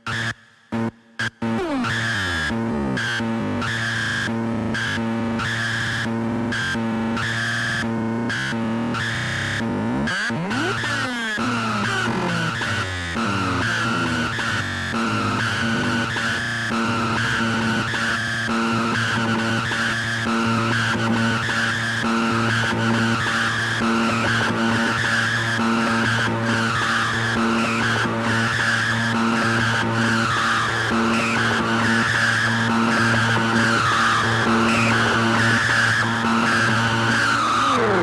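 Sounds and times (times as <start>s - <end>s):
loud techno music: 1.6s - 3.9s, 10.1s - 15.3s, 31.4s - 38.0s.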